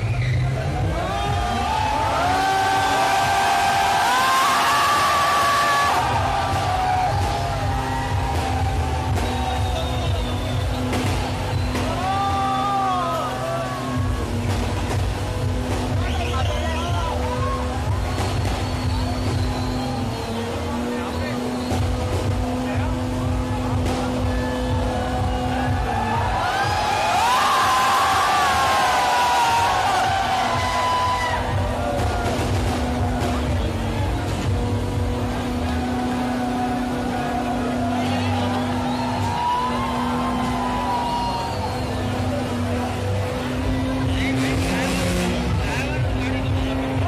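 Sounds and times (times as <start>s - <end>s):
car engine revving hard: 0.0s - 47.0s
crowd shouting and cheering: 0.0s - 47.0s.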